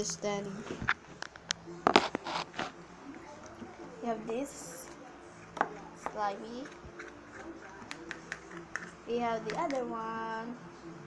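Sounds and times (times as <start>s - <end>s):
plastic cups rustling scrapes: 1.9s - 2.8s.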